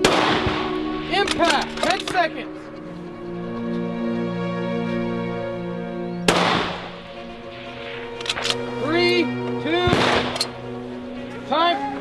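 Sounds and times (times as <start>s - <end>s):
rifle shots with echo: 0.0s - 2.1s, 6.3s - 8.6s, 9.8s - 10.6s
background music sustained tones: 0.0s - 12.0s
sharp rifle clicks: 9.9s - 10.6s.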